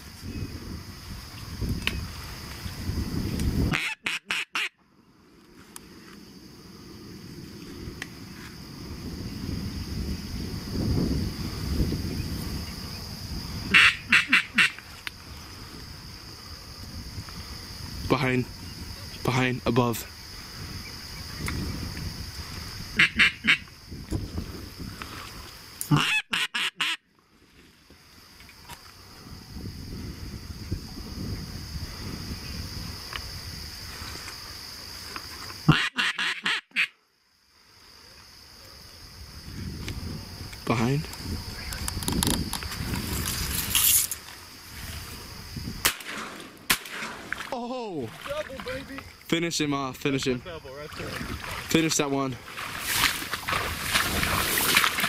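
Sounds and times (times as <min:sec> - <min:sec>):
duck call quacking notes: 0:03.7 - 0:04.8, 0:13.7 - 0:14.8, 0:23.0 - 0:23.7, 0:25.9 - 0:27.0, 0:35.7 - 0:37.0
shotgun shot: 0:45.8 - 0:47.4.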